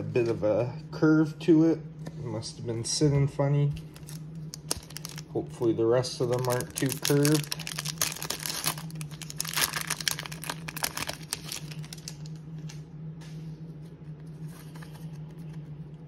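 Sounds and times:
steady low hum: 0:00.0 - 0:16.0
cards rustling: 0:03.8 - 0:05.3, 0:06.2 - 0:12.8, 0:14.2 - 0:15.9
wrapper tearing and crinkling: 0:03.9 - 0:05.3, 0:06.2 - 0:12.4.

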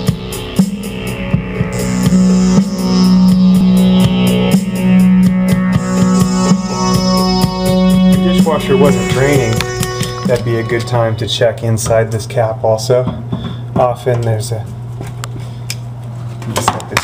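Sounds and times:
drum beat: 0:00.0 - 0:11.2
keyboard or guitar tones: 0:00.0 - 0:12.0
held low note: 0:00.0 - 0:12.1.

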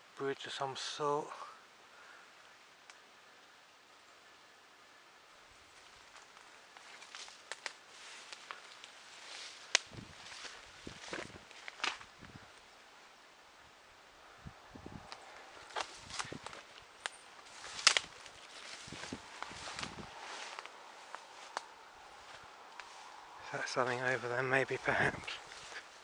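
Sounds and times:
footsteps on uneven ground: 0:05.7 - 0:12.6, 0:14.9 - 0:26.0.

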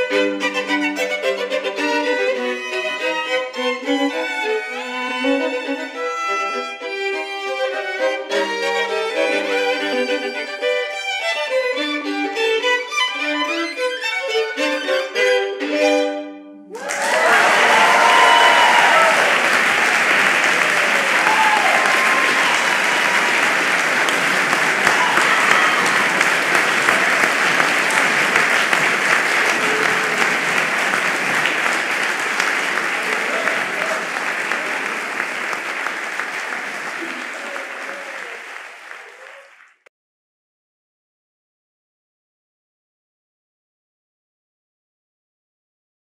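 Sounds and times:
people cheering: 0:16.7 - 0:39.8
audience applauding: 0:16.7 - 0:39.9.

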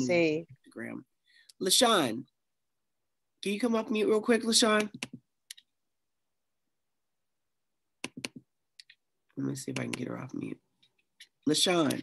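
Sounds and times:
computer mouse clicking: 0:04.7 - 0:05.7, 0:08.0 - 0:09.0, 0:09.6 - 0:10.2.

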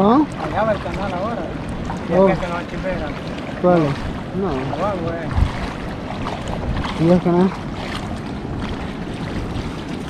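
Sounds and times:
shallow sea water washing: 0:00.0 - 0:10.0
wind buffeting microphone: 0:00.0 - 0:10.0.

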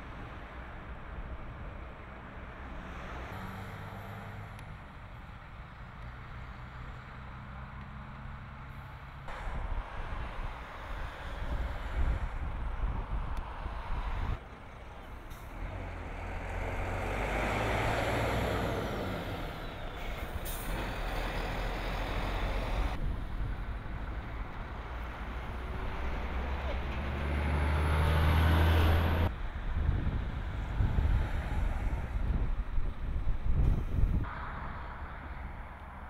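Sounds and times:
heavy lorries driving past: 0:00.0 - 0:36.0.

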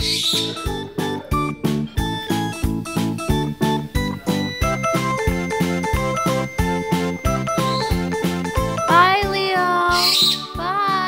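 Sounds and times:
light tune on a steady beat: 0:00.0 - 0:11.0.

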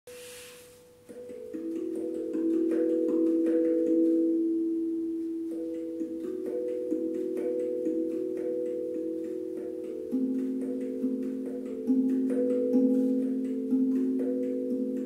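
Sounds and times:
handpan notes ringing: 0:00.7 - 0:15.0.

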